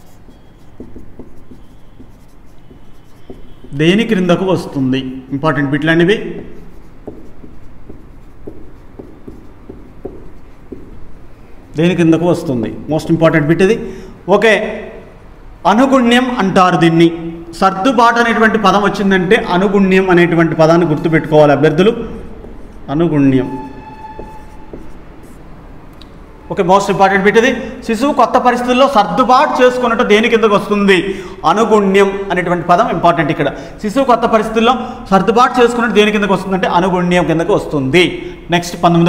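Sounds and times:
marker pen writing on whiteboard: 0:00.0 - 0:12.2, 0:19.6 - 0:25.7.

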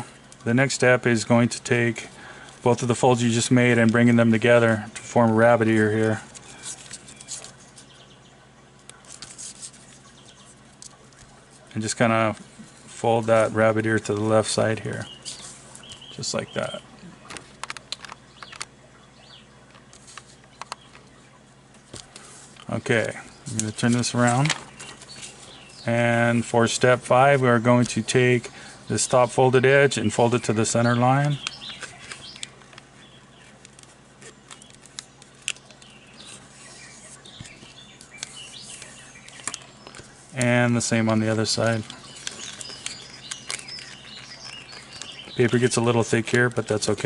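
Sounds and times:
paper crinkling: 0:05.4 - 0:08.0, 0:08.9 - 0:11.7, 0:19.7 - 0:21.2, 0:31.3 - 0:47.0.

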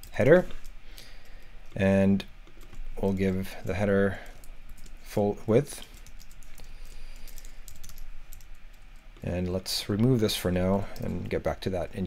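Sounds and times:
computer keyboard typing: 0:02.4 - 0:03.3, 0:04.2 - 0:05.0, 0:05.8 - 0:09.3.

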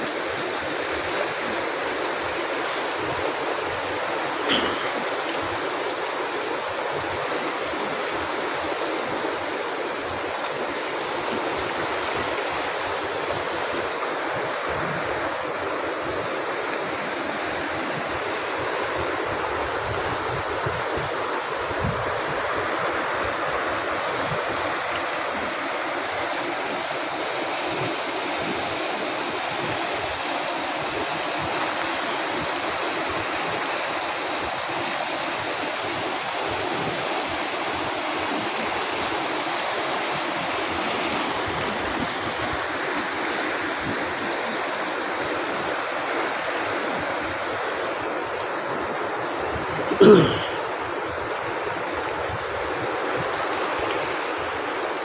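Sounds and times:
river rapids rushing over boulders: 0:00.0 - 0:55.0.

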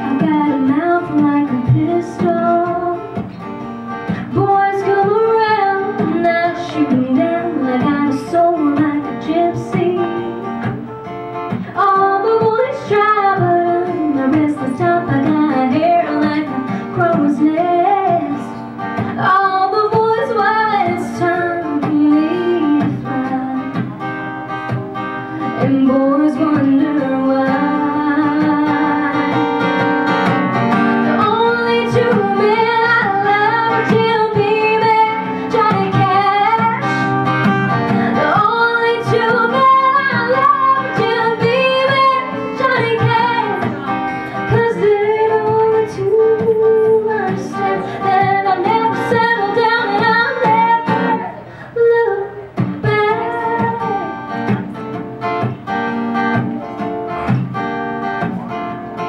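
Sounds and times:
woman singing: 0:00.0 - 0:24.1, 0:24.7 - 0:54.7
strummed acoustic guitar: 0:00.0 - 0:59.0.

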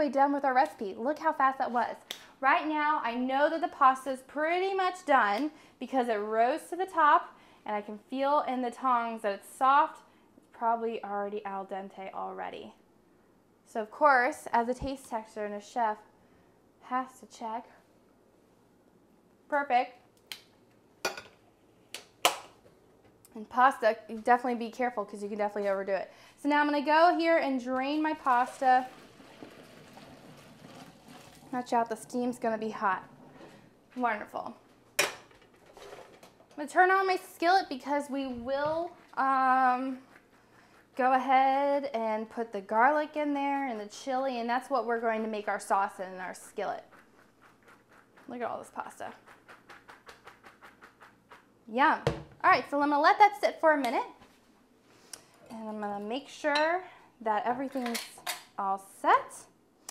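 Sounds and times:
spaghetti shaken in a colander: 0:45.9 - 0:51.6.

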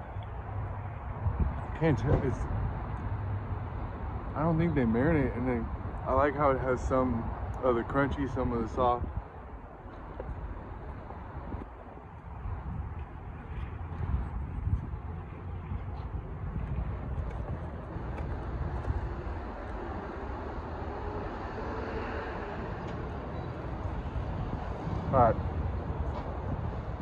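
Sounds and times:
wind rumbling on microphone: 0:00.0 - 0:27.0.

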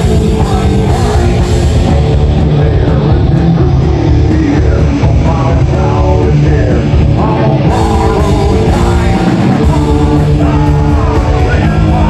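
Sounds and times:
bass guitar: 0:00.0 - 0:12.0
drum kit: 0:00.0 - 0:12.0
electric guitar: 0:00.0 - 0:12.0.

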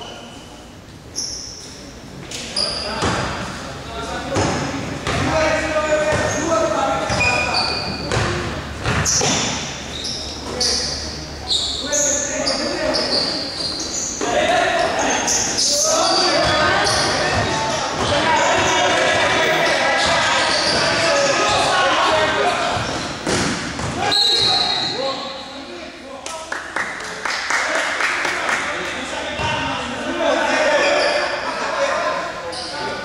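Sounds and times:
sneakers squeaking: 0:00.0 - 0:25.7, 0:29.2 - 0:29.9, 0:30.7 - 0:31.5, 0:32.3 - 0:33.0
ball bouncing on court floor: 0:03.0 - 0:03.4, 0:04.3 - 0:05.4, 0:06.1 - 0:06.4, 0:07.1 - 0:09.7, 0:22.7 - 0:24.6
overlapping voices: 0:15.8 - 0:22.8, 0:26.2 - 0:29.4.

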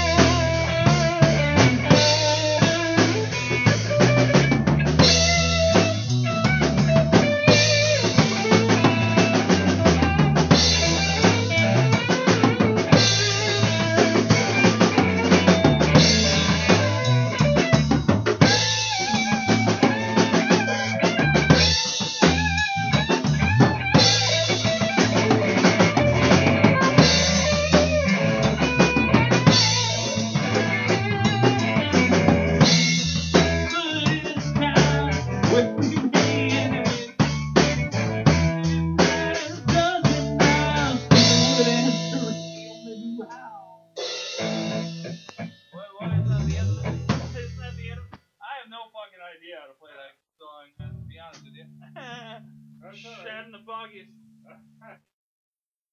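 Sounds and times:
bass line: 0:00.0 - 0:48.2, 0:50.8 - 0:55.0
drum kit beat: 0:00.0 - 0:48.4, 0:50.9 - 0:55.0.

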